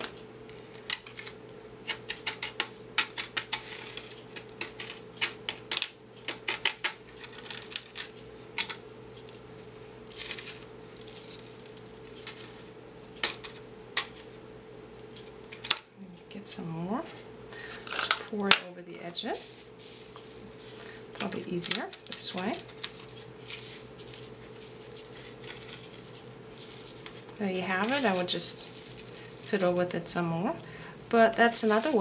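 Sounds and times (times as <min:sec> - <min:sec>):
faint steady hum: 0:00.0 - 0:32.0
glitter grains clicking and tapping: 0:21.2 - 0:32.0.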